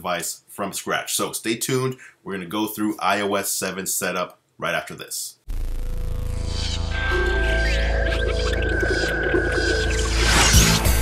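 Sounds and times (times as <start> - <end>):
low drone: 5.5 - 11.0
gliding tones sweeping: 6.2 - 11.0.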